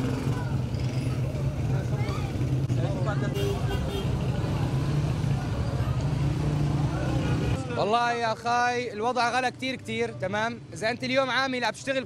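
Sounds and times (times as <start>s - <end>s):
distant people talking: 0.0s - 7.8s.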